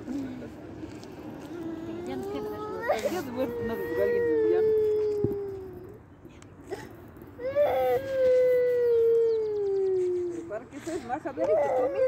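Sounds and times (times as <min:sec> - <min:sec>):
young boy crying: 0:01.5 - 0:06.0, 0:06.6 - 0:12.0.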